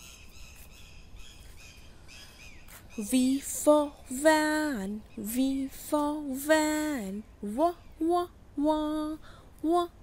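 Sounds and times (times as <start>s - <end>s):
faint bird chirps: 0.0s - 6.2s
low steady hiss: 0.0s - 10.0s.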